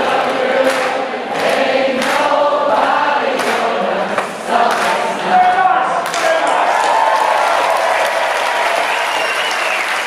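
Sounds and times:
crowd singing long held notes: 0:00.0 - 0:06.1.

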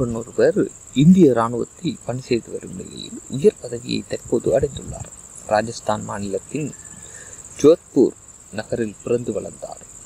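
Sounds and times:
narrator speaking: 0:00.0 - 0:06.8, 0:07.6 - 0:09.8
steady high-pitched whine: 0:00.0 - 0:10.0.

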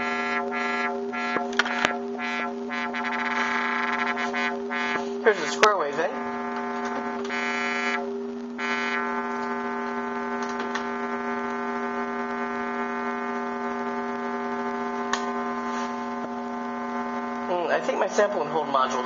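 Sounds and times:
buzzy synthesizer tone: 0:00.0 - 0:19.0.

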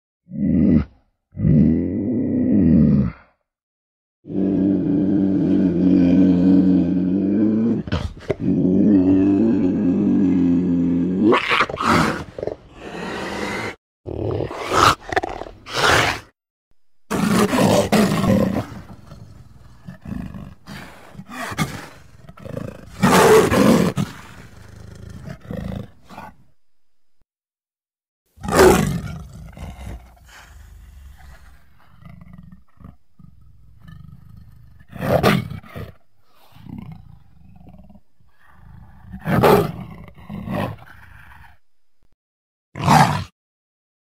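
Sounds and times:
big cat roars: 0:00.3 - 0:03.4, 0:04.3 - 0:16.3, 0:17.1 - 0:26.4, 0:28.4 - 0:41.6, 0:42.8 - 0:43.4
growling: 0:00.3 - 0:03.4, 0:04.3 - 0:16.4, 0:17.0 - 0:26.6, 0:28.4 - 0:42.1, 0:42.8 - 0:43.4.

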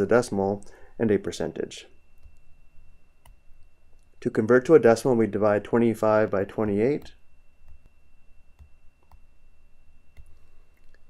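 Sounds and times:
faint high-pitched whine: 0:00.0 - 0:11.0
computer clicks: 0:03.2 - 0:03.4, 0:08.6 - 0:09.3.

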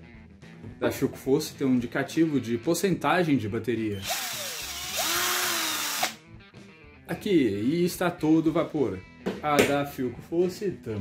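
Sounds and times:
cordless drill motor whine: 0:04.0 - 0:06.2.

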